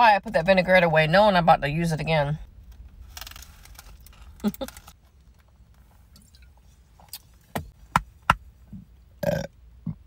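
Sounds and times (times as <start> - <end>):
woman's throat sounds: 9.2 - 10.0.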